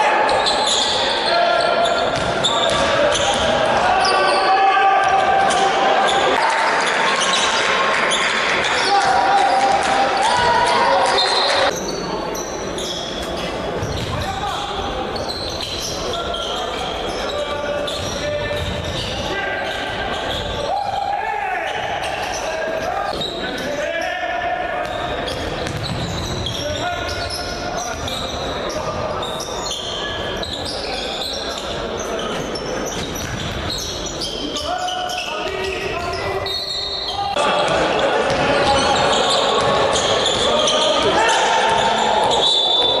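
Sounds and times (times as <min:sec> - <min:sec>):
voices of players and spectators: 0:00.0 - 0:43.0
basketball bouncing on hardwood: 0:25.6 - 0:26.0.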